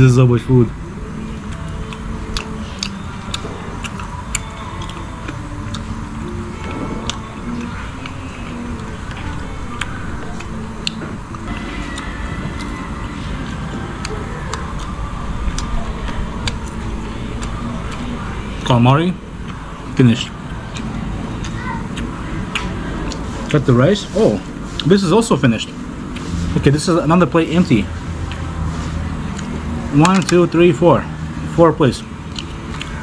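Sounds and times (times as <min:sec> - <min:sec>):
melody of held notes: 0:00.0 - 0:33.0
steady low rumble: 0:00.0 - 0:33.0.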